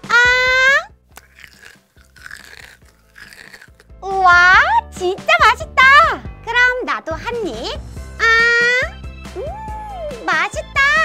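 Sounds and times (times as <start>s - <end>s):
crunching chewing sounds: 1.1s - 4.0s.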